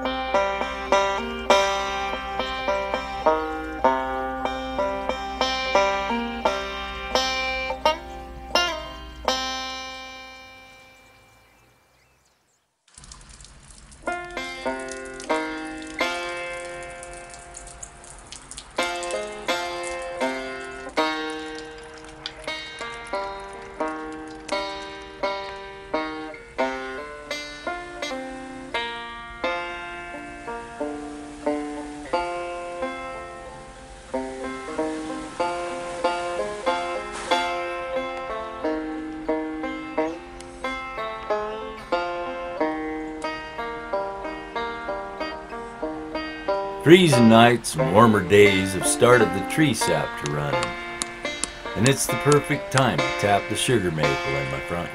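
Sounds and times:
banjo picked tune: 0:00.0 - 0:11.2, 0:14.0 - 0:18.0, 0:18.7 - 0:54.9.

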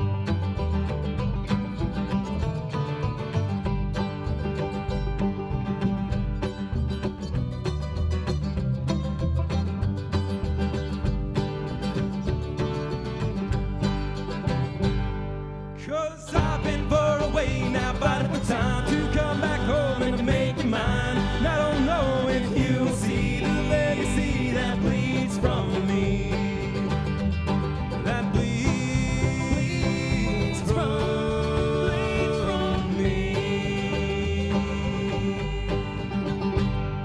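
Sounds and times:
acoustic guitar: 0:00.0 - 0:37.0
banjo: 0:00.0 - 0:37.0
upright bass: 0:00.0 - 0:37.0.

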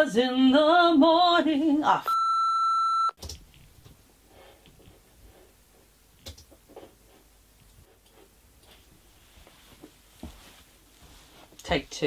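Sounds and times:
censor bleep: 0:02.1 - 0:03.2.

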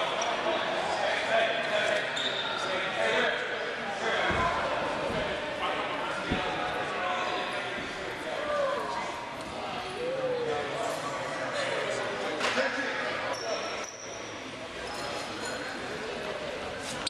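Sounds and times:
echoing chatter of voices: 0:00.0 - 0:17.0.

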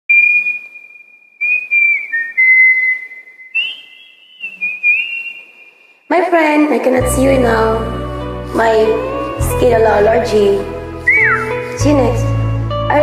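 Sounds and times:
person whistling a melody: 0:00.1 - 0:05.9, 0:11.0 - 0:11.7
breath noise: 0:04.4 - 0:06.1.

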